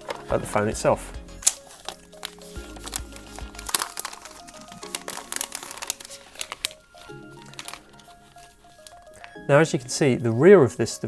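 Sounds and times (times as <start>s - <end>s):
plastic film crinkling and clicking: 0.0s - 0.4s, 1.4s - 10.4s
background music: 0.0s - 11.0s.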